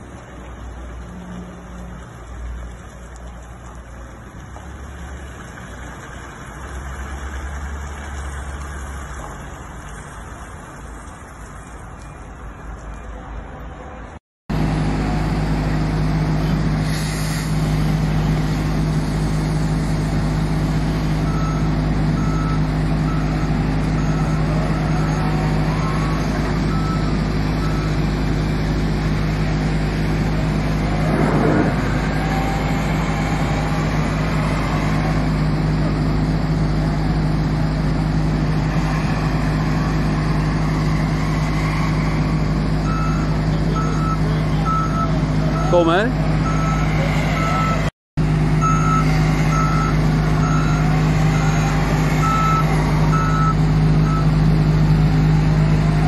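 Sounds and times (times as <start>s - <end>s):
diesel engine running: 0.0s - 13.4s, 14.0s - 56.0s
reversing alarm beeping: 21.2s - 28.0s, 42.8s - 47.9s, 48.6s - 54.4s.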